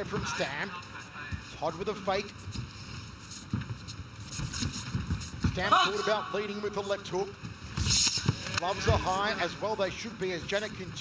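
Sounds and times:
arena noise: 4.4s - 11.0s.

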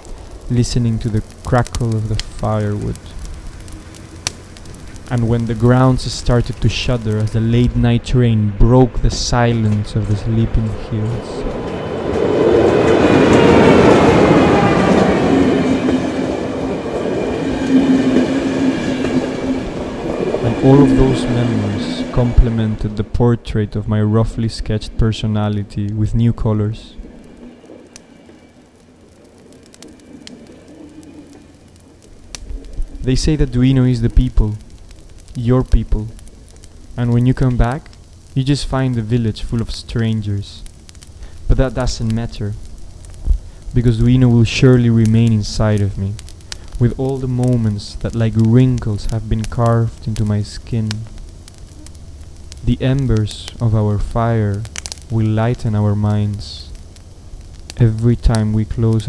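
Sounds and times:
bonfire crackling and popping: 0.0s - 59.0s.

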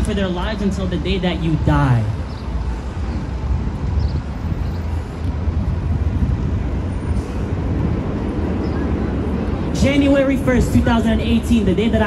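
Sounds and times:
low rumble of traffic: 0.0s - 12.0s.

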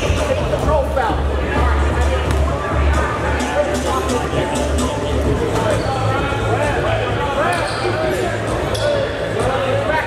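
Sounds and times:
echoing indistinct voices: 0.0s - 10.0s.

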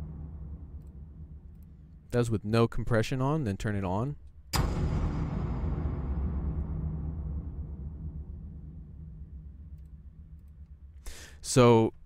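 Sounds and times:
cinematic impact boom: 0.0s - 2.1s, 4.5s - 11.1s.

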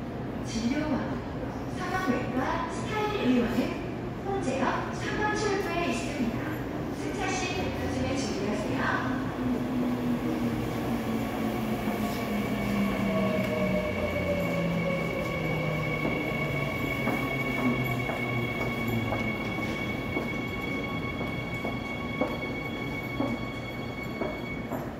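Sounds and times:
subway train motor whine: 9.1s - 24.9s.

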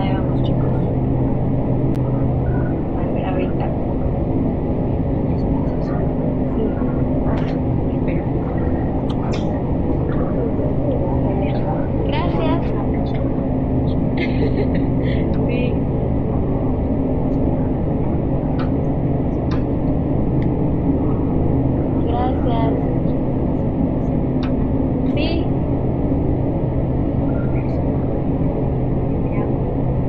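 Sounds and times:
faint wavering voices: 0.0s - 30.0s
low rumble with hum: 0.0s - 30.0s.

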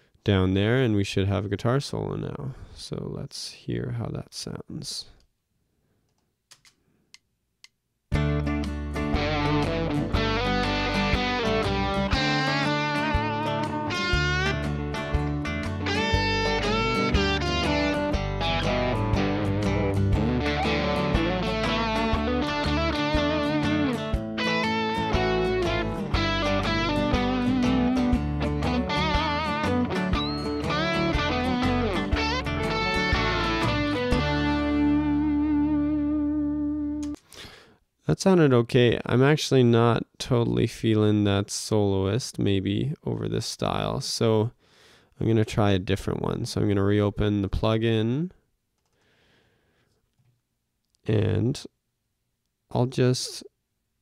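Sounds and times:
band backing track: 8.2s - 35.9s
electric guitar solo: 9.0s - 37.2s.

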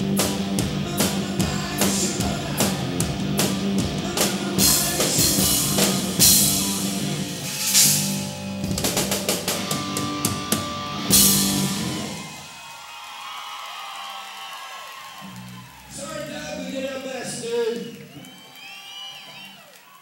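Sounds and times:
drum fill: 0.0s - 12.4s
live rock band: 0.0s - 12.7s
cymbal crash: 5.9s - 10.5s.

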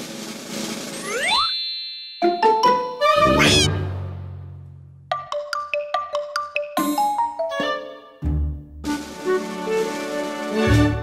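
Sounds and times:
cartoon whoosh: 1.0s - 1.6s, 3.1s - 3.8s.

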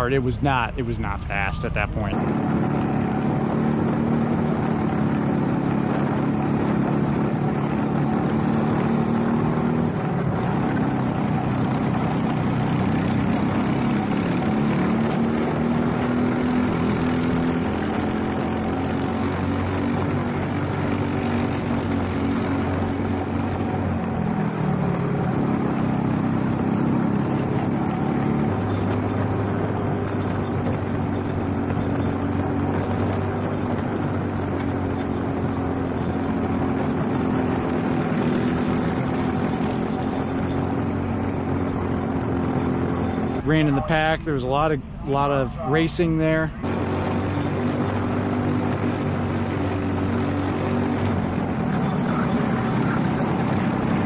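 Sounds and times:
kart engine running hard: 2.1s - 43.5s, 46.6s - 54.0s.

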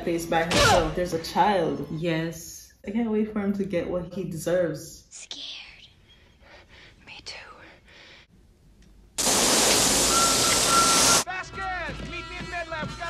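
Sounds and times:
faint breathy sounds: 5.2s - 8.3s
loud hiss with high tone: 9.2s - 11.2s.

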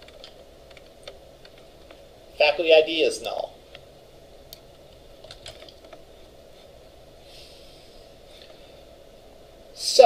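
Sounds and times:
computer keyboard clicks: 0.0s - 1.6s, 5.2s - 6.0s
low room hum: 0.0s - 10.0s.

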